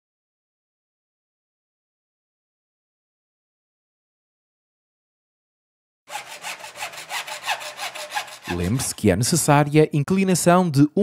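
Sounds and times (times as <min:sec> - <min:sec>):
hacksaw cutting plastic pipe: 0:06.1 - 0:09.5.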